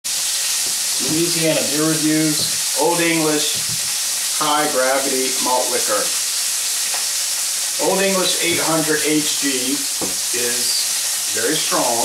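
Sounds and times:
food frying sizzle: 0.1s - 12.0s.

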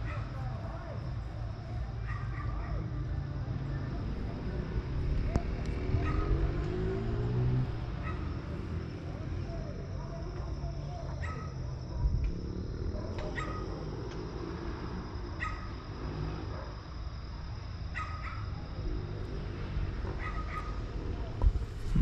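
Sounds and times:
distant dogs barking: 0.0s - 21.4s
low rumble: 21.0s - 22.0s.

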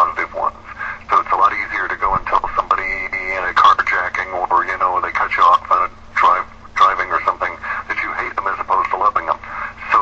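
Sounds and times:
faint steady hum: 0.0s - 10.0s
talk radio speech: 0.0s - 10.0s.

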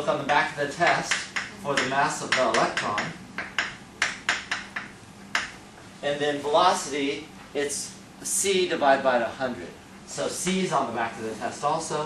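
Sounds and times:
chalk tapping and scraping: 0.8s - 5.6s.

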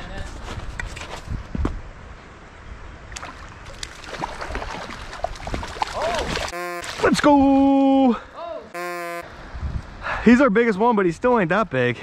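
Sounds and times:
creek water washing: 3.0s - 8.1s
fish splashing in water: 3.1s - 7.2s.

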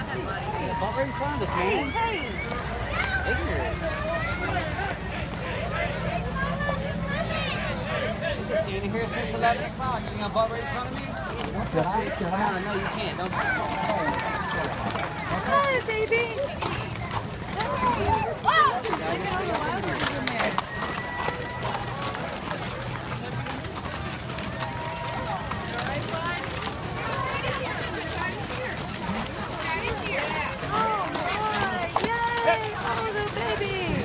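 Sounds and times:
people calling out and talking: 0.0s - 34.0s
hoofbeats clicking: 8.1s - 34.0s.

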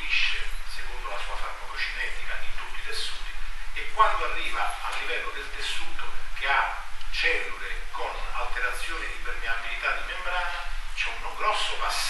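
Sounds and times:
man lecturing: 0.0s - 12.0s
steady low hum: 0.0s - 12.0s.

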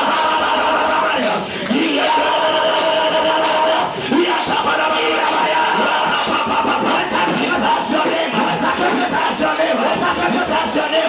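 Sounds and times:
amplified worship music: 0.0s - 11.0s
congregation singing: 0.0s - 11.0s.

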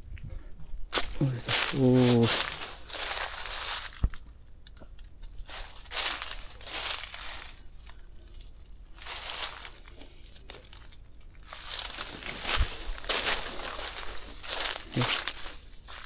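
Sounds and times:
footsteps crunching dry leaves: 0.9s - 4.3s, 5.2s - 8.0s, 8.8s - 16.0s.

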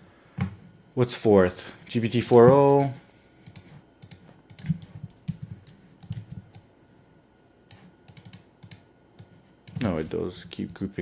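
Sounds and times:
typing on computer keyboard: 3.5s - 6.6s, 7.7s - 8.8s.

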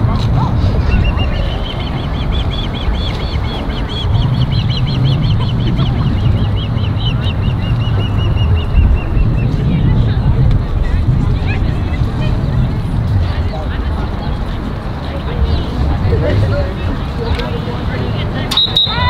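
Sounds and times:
wind rumble on microphone: 0.0s - 18.5s
bird chirping: 0.9s - 9.5s.

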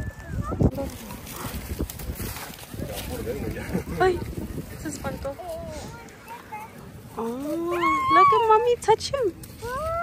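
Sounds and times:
excited voices: 5.3s - 8.8s.

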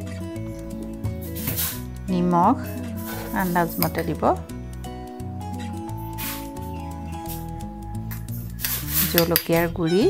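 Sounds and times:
background music held notes: 0.0s - 10.0s
spoon scraping bowl: 2.6s - 4.2s, 8.5s - 10.0s.

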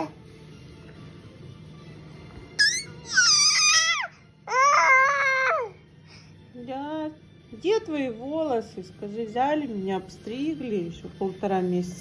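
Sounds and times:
infant crying high squeals: 2.6s - 5.7s.

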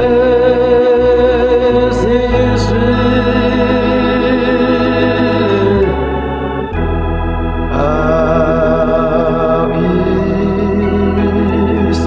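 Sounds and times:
organ chords: 0.0s - 12.0s.

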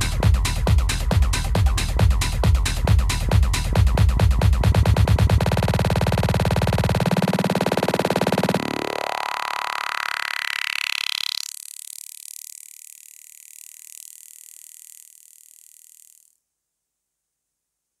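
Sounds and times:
techno track: 0.0s - 11.4s
rising filter sweep: 3.2s - 11.6s.

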